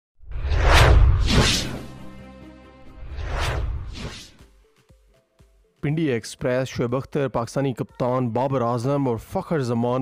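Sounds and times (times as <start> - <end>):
whooshes: 0.2 - 4.4.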